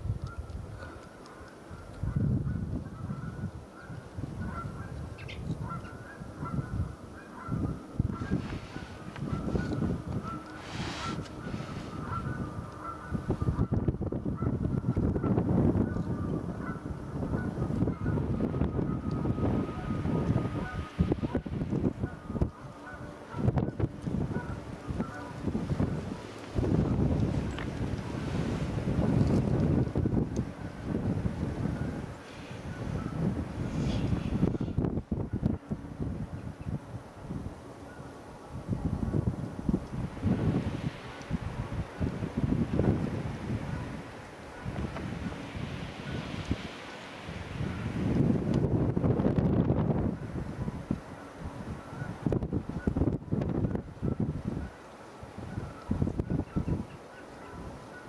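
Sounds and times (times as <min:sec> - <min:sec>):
distant jet engine rumble: 0:00.0 - 0:58.0
wind buffeting microphone: 0:00.0 - 0:58.0.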